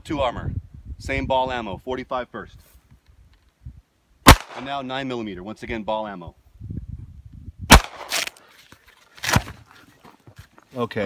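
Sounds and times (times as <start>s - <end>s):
pistol shot tail: 4.3s - 4.7s, 7.7s - 8.3s.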